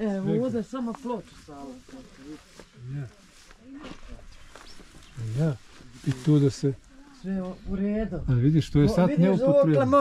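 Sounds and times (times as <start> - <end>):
people murmuring: 0.0 - 10.0.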